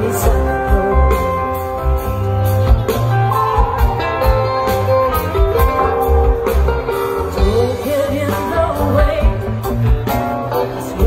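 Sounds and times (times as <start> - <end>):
drums: 0.0 - 11.0
electric guitar: 0.0 - 11.0
woman singing into microphone: 7.4 - 9.6.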